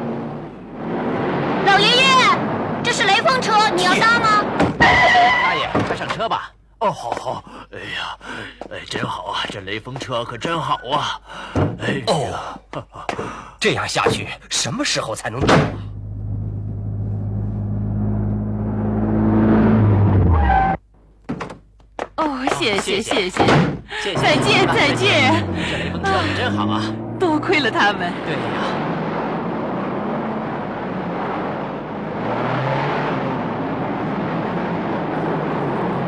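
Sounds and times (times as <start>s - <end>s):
van engine driving: 15.6s - 20.8s, 24.0s - 36.0s
cartoon car engine humming: 24.2s - 30.7s.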